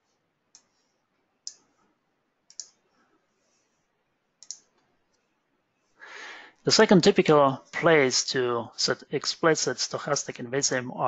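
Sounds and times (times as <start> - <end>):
quiet computer clicking: 0.5 - 2.8, 4.4 - 5.3.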